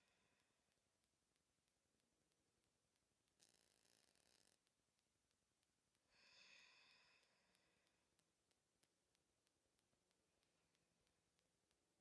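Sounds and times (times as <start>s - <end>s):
faint breath: 6.1s - 8.1s.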